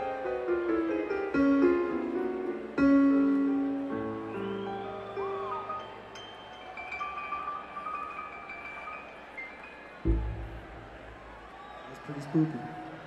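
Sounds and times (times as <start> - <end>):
bell-like keyboard notes: 4.4 - 10.8.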